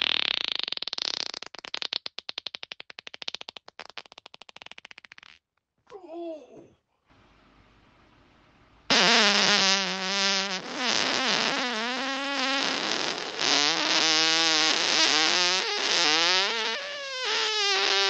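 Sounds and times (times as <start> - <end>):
human farts: 0.0 - 5.5, 8.9 - 18.0.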